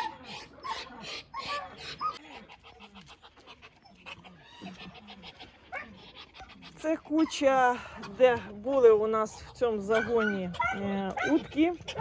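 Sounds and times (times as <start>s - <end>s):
ducks huffing and hissing: 0.0s - 12.0s.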